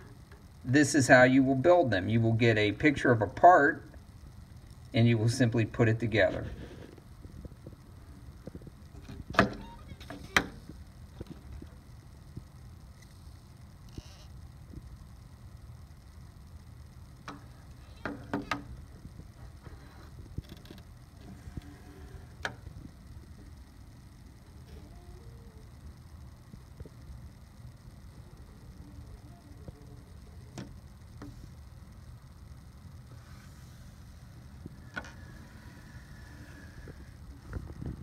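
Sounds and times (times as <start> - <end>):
low steady rumble: 0.0 - 38.0.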